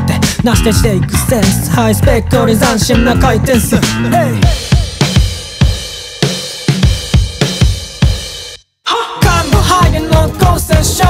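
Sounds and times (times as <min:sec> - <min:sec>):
bass guitar line: 0:00.0 - 0:05.5, 0:09.2 - 0:11.0
drum kit playing: 0:00.0 - 0:08.6, 0:09.2 - 0:11.0.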